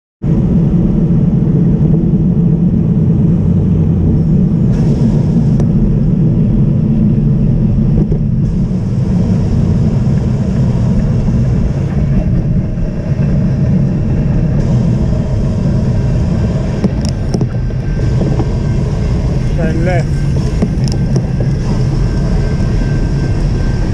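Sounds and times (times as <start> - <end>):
low wind rumble on microphone: 0.2 - 23.9
tyre and road noise: 0.2 - 23.9.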